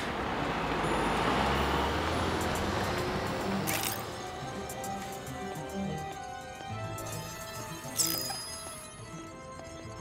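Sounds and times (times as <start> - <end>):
film score with held notes: 2.2 - 10.0.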